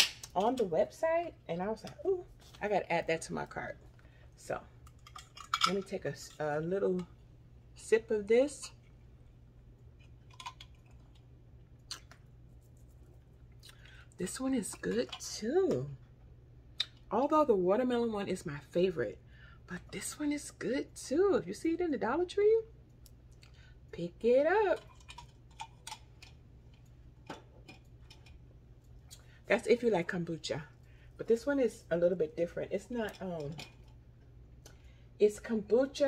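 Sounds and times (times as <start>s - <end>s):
low steady hum: 0.0s - 36.0s.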